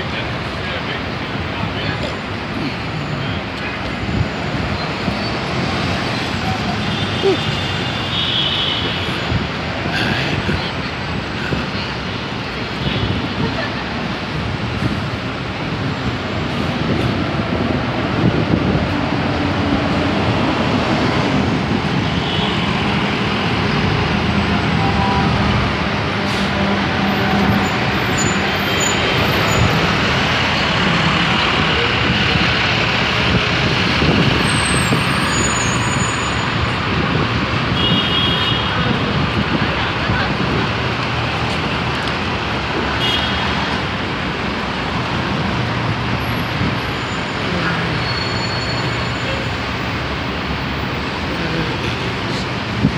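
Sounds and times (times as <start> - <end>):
city street traffic: 0.0 - 52.9.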